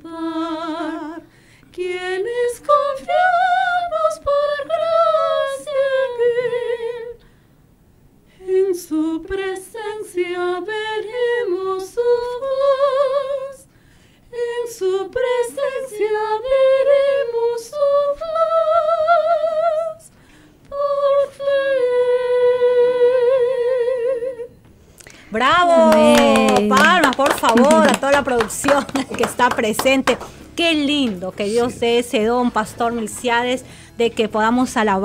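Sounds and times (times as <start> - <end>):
woman singing with vibrato: 0.0 - 7.2, 8.4 - 13.7, 14.3 - 20.1, 20.7 - 24.6, 25.3 - 30.2.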